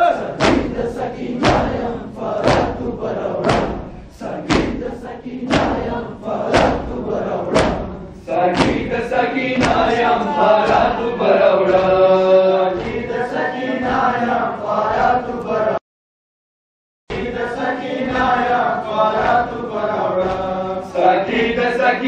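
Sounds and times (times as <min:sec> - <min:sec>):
men beating chests in unison: 0:00.0 - 0:15.4, 0:17.1 - 0:22.0
men chanting a lament: 0:00.0 - 0:15.8, 0:17.1 - 0:22.0.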